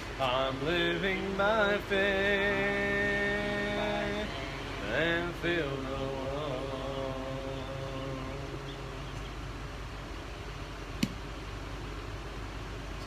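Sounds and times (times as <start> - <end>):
man singing a hymn: 0.0 - 9.2
low background hum: 0.0 - 13.0.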